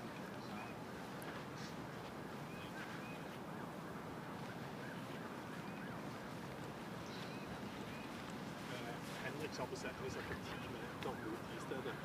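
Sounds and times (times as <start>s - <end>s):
outdoor background hiss: 0.0s - 12.0s
bird chirps: 7.0s - 8.3s.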